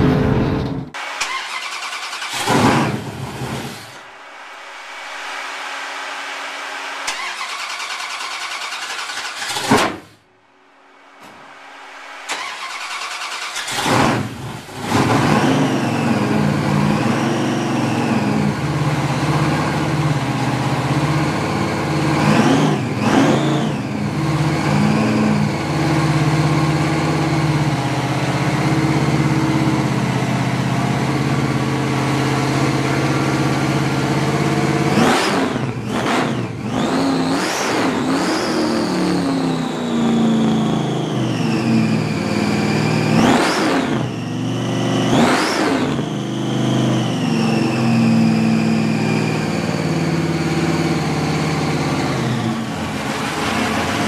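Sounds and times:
supercharged car engine idling: 0:00.0 - 0:54.0
engine throttle blips: 0:11.0 - 0:54.0.

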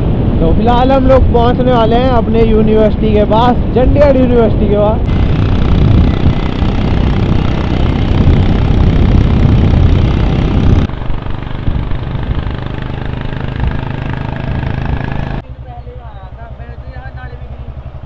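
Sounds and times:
road noise: 0:00.0 - 0:18.0
motorcycle engine: 0:05.0 - 0:18.0.

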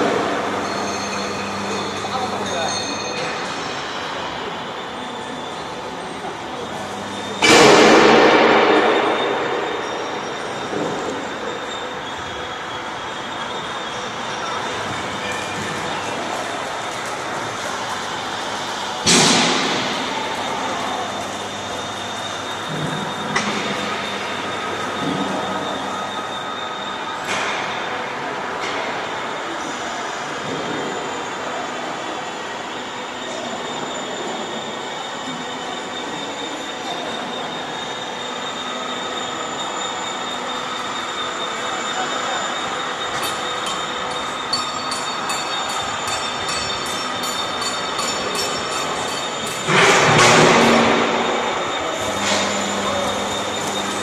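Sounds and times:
metallic ringing tones: 0:00.0 - 0:27.9, 0:33.3 - 0:54.0
loud metal clang: 0:07.4 - 0:10.9.

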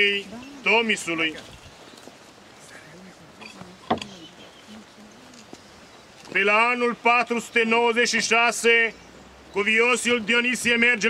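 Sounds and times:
indistinct background voices: 0:02.5 - 0:06.5.

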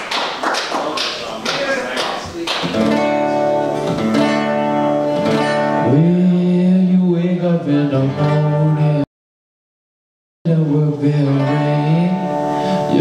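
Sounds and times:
acoustic guitar strumming: 0:02.6 - 0:09.1, 0:10.5 - 0:13.0.

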